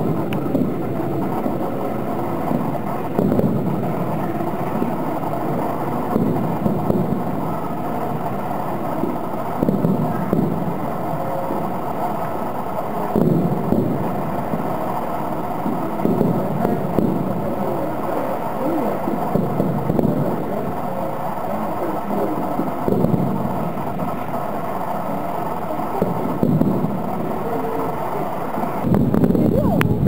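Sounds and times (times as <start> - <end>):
distant fireworks booming: 0.0 - 30.0
steady background din: 0.0 - 30.0.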